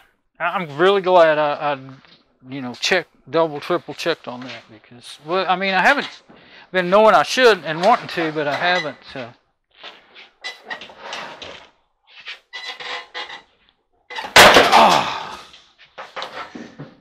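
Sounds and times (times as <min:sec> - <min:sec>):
loud bang: 0:14.4 - 0:15.2
man exclaiming and sighing: 0:14.6 - 0:15.6.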